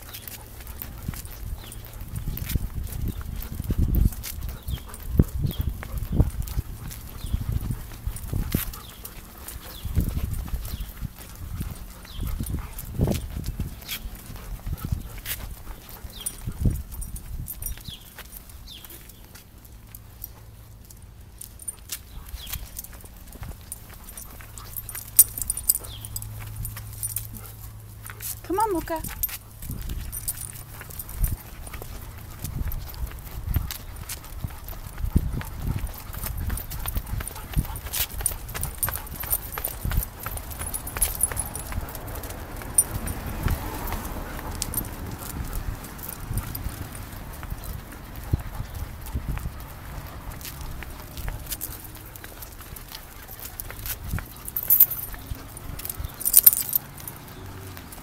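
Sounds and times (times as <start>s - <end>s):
footsteps on concrete: 0.0s - 58.0s.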